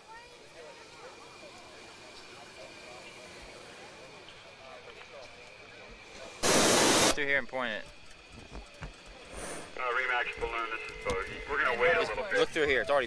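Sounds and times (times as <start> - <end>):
distant crowd murmur: 0.0 - 13.0
faint high whine: 0.4 - 8.4
loud burst of hissing noise: 6.3 - 7.3.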